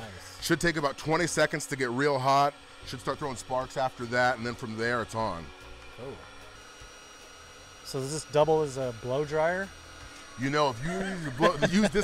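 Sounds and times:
electric fan whir with whine: 0.0 - 12.0.

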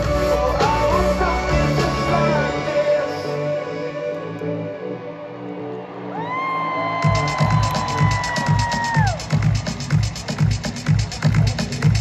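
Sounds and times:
high-pitched cheer: 5.6 - 9.6
electronic dance beat: 7.0 - 12.0.

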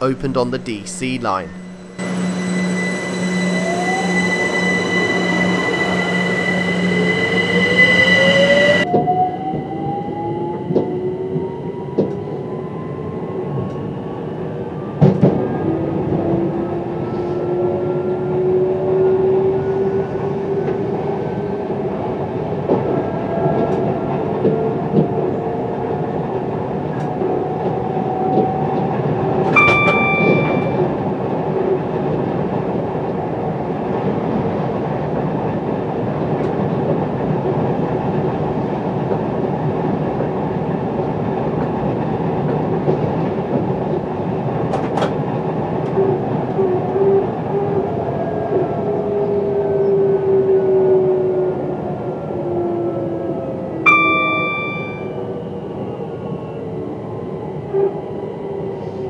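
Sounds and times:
high-pitched tone: 0.0 - 9.0, 29.6 - 31.1, 53.9 - 55.5
train traction motors whining: 1.6 - 9.6.

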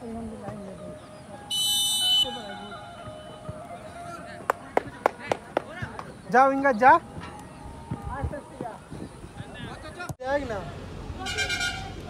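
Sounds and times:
referee's whistle blast: 1.5 - 2.7.

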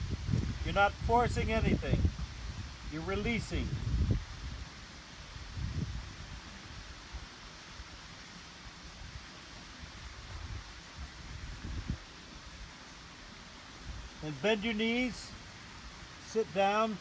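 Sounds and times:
wind buffeting microphone: 0.0 - 7.3, 9.9 - 12.1
breeze hissing: 0.0 - 17.0.

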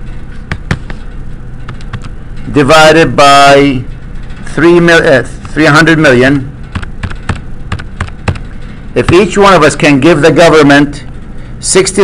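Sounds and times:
calculator keys clicking: 6.7 - 8.4.

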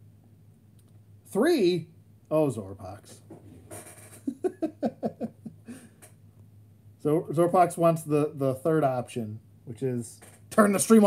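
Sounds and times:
man laughing: 4.2 - 6.0
faint breath: 5.6 - 6.1.

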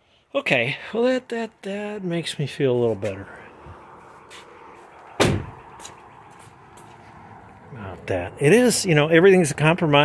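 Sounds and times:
car door slamming: 5.2 - 5.7.

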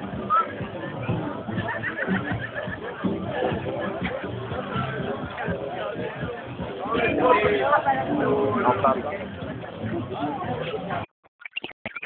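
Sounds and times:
crowd chatter: 0.0 - 11.1.

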